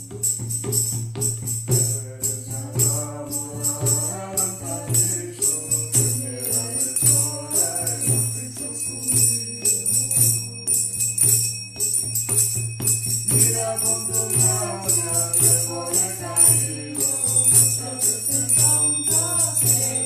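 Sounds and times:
metal hand percussion jingling: 0.0s - 20.0s
faint singing: 2.0s - 11.2s, 13.3s - 20.0s.

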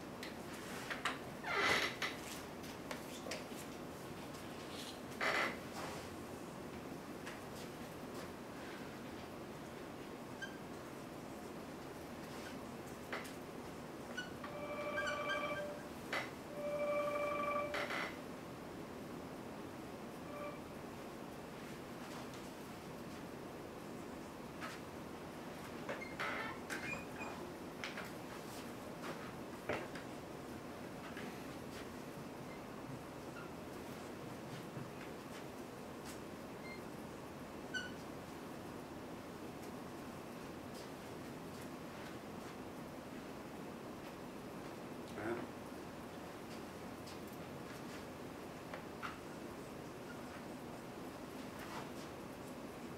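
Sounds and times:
room hiss: 0.0s - 52.9s
marker squeak: 14.2s - 15.8s.

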